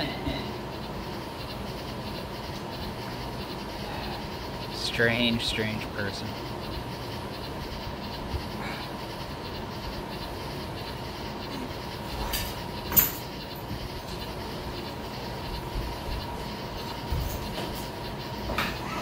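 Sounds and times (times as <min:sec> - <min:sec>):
background hum and hiss: 0:00.0 - 0:19.0
faint constant tone: 0:00.0 - 0:19.0.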